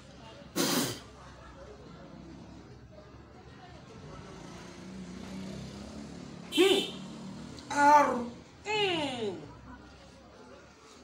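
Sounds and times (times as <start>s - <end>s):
faint voices: 7.7s - 11.0s.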